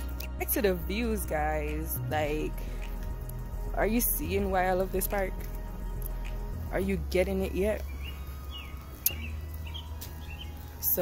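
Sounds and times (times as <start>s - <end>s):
steady low rumble: 0.0s - 11.0s
small bird chirping: 7.3s - 11.0s.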